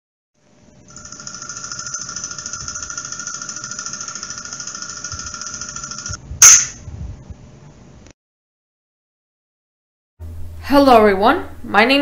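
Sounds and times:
film projector clatter and whir: 0.9s - 6.2s.

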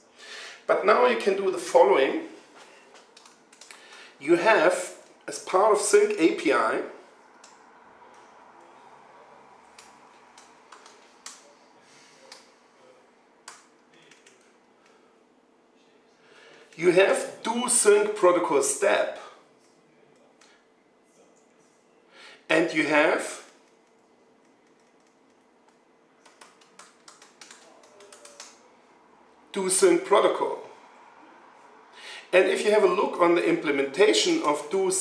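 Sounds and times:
computer keyboard keystrokes: 2.9s - 4.0s, 9.7s - 11.4s, 13.4s - 14.5s, 23.6s - 28.6s.

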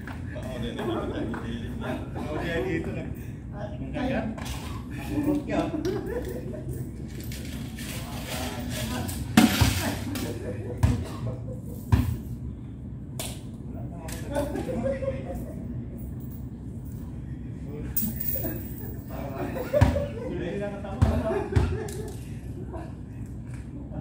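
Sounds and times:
coins clinking on concrete: 18.0s - 19.1s
jingling rattle: 18.0s - 19.1s.

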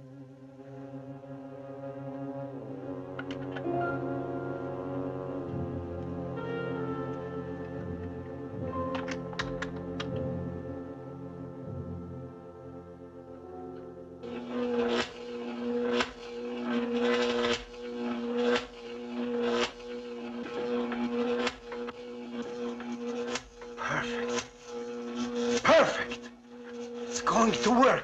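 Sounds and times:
electrical hum: 0.0s - 28.0s
sharp electrical crackles: 14.2s - 28.0s
person speaking: 23.8s - 24.4s, 25.6s - 26.3s, 27.1s - 28.0s.

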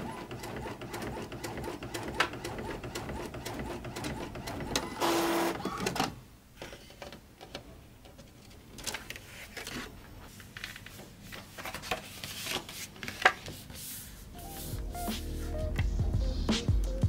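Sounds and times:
inkjet printer whirring and clicking: 0.0s - 6.1s.

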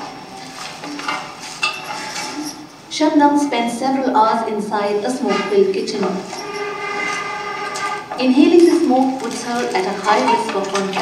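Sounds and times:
sustained horn-like chord: 6.3s - 8.2s.

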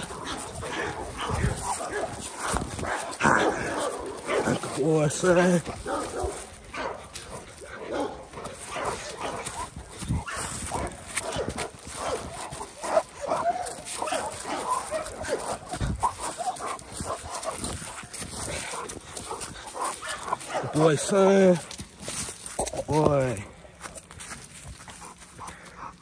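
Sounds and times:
scuffling in dry leaves: 0.0s - 26.0s.

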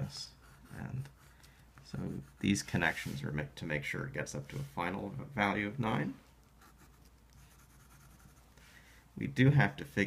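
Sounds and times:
pencil scratching on paper: 0.0s - 3.3s, 6.4s - 8.6s.

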